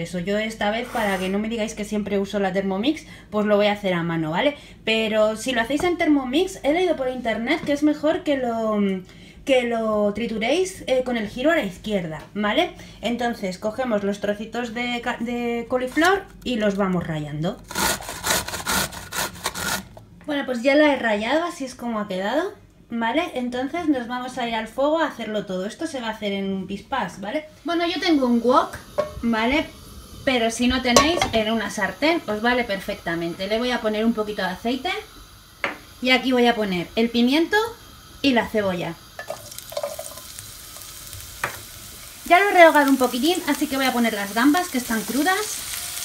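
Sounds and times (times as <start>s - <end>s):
grater rasping strokes: 17.7s - 19.9s
vegetables sizzling in a wok: 27.6s - 46.0s.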